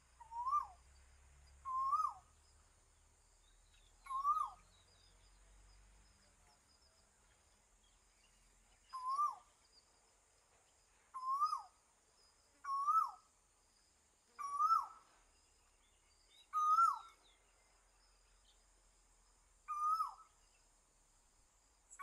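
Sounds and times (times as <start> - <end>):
bird calling: 0.0 - 0.8, 1.7 - 2.3, 3.7 - 4.8, 8.9 - 9.5, 11.2 - 11.8, 12.6 - 13.2, 14.4 - 15.1, 16.4 - 17.3, 19.7 - 20.4
faint high-pitched hiss: 0.0 - 22.0.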